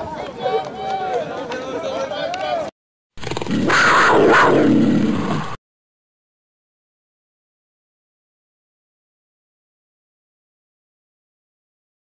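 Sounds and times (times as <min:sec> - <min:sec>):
voices talking: 0:00.0 - 0:02.7.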